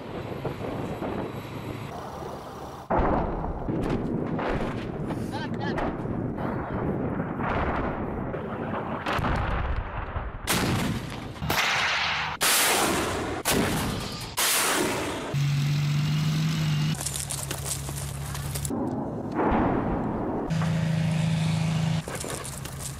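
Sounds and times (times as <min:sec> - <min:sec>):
artillery booms: 0:02.9 - 0:15.3, 0:18.7 - 0:20.6
rough rumbling: 0:16.8 - 0:22.9.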